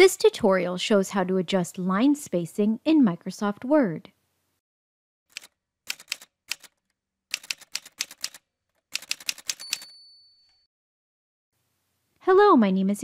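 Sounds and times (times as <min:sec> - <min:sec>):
typewriter keys striking: 0:05.3 - 0:09.9
typewriter bell ringing: 0:09.0 - 0:10.7.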